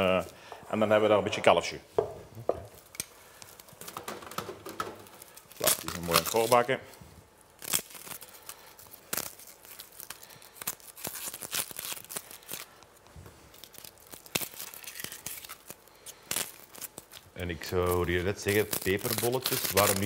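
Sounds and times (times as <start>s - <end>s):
papery skins tearing and crackling: 5.0s - 6.8s, 7.4s - 20.0s.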